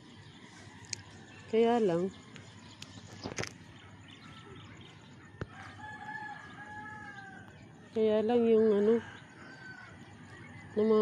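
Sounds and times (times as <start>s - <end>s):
faint rooster crowing: 5.4s - 7.7s, 8.6s - 11.0s.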